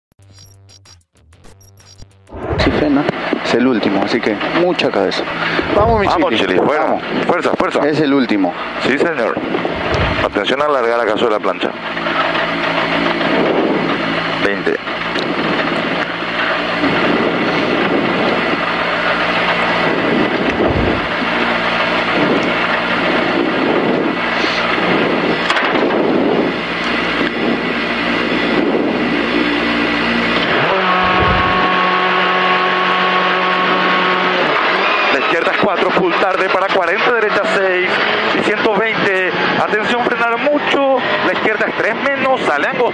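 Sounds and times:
rally car engine revving: 0:01.6 - 0:23.6, 0:26.8 - 0:42.9.

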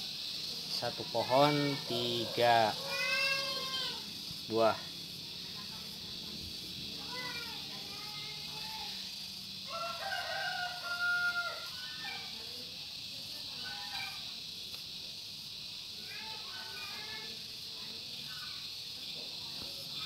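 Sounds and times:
rooster crowing: 0:02.0 - 0:03.9, 0:09.6 - 0:12.4.

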